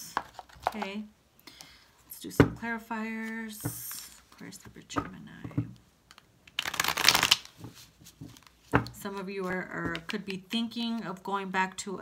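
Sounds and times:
cards being shuffled: 0:06.1 - 0:10.3.

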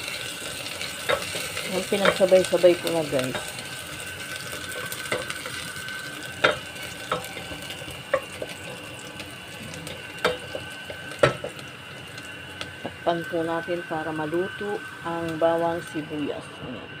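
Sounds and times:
vegetables sizzling in oil: 0:00.0 - 0:16.6.

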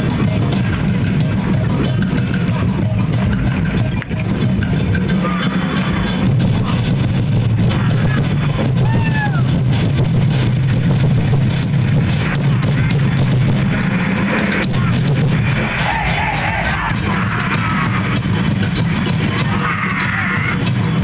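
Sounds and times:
crowd noise: 0:00.0 - 0:21.0
festival drumming: 0:00.0 - 0:21.0.

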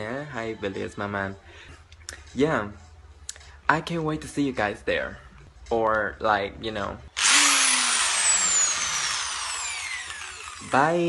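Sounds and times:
electric drill whirring: 0:07.2 - 0:11.0.

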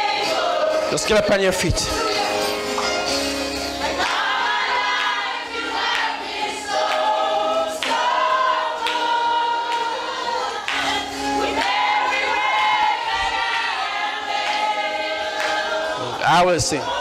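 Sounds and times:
instrumental backing: 0:00.0 - 0:16.2
congregation singing: 0:00.0 - 0:17.0.

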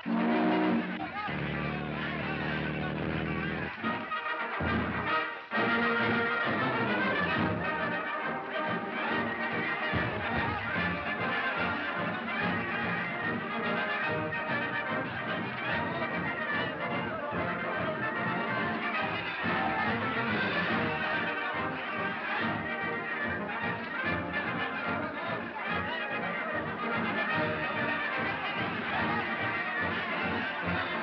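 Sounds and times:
brass band music: 0:00.0 - 0:31.0.

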